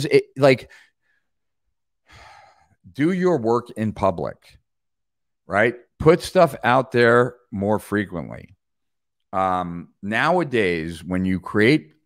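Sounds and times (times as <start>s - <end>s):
man talking: 0.0s - 0.8s, 2.9s - 4.6s, 5.4s - 8.6s, 9.3s - 12.0s
man breathing: 0.7s - 2.9s.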